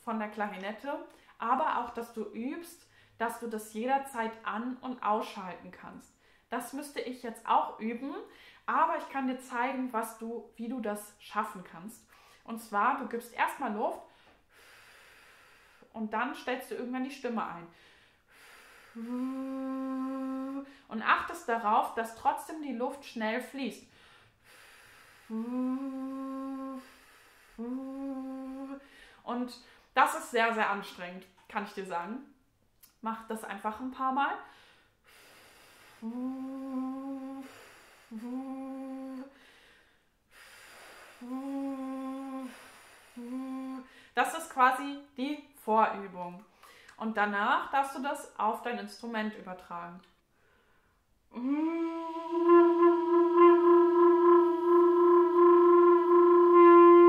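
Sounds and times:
steady exhale: 12.1s - 12.5s, 14.1s - 15.9s, 17.7s - 20.9s, 23.9s - 29.9s, 34.5s - 44.2s, 46.5s - 47.0s, 50.3s - 52.5s
breathy air through lips: 17.8s - 20.9s, 23.9s - 29.9s, 34.5s - 44.2s
woman singing held notes: 19.0s - 20.7s, 51.3s - 57.0s.

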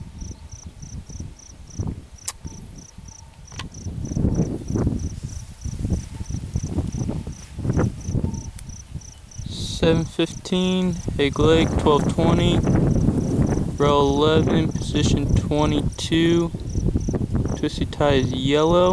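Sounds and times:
low microphone rumbling: 0.0s - 18.9s
cricket chirping: 0.1s - 16.0s, 16.6s - 18.3s.

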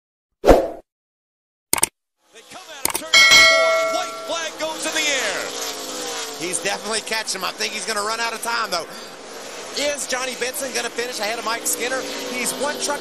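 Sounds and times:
sharp clicks: 1.7s - 1.9s, 2.8s - 3.1s
metallic clang ringing: 3.2s - 4.6s.

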